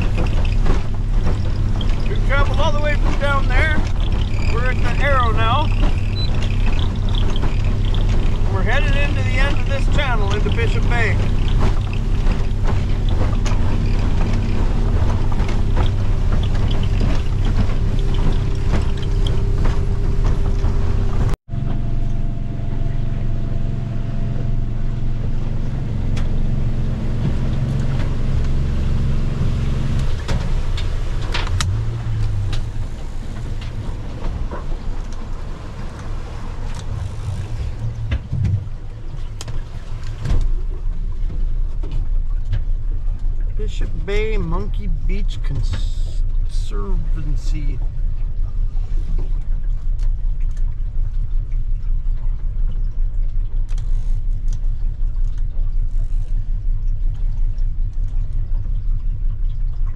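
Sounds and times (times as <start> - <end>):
wind noise: 0.0 - 21.9
boat engine running: 0.0 - 59.9
water noise: 0.0 - 59.9.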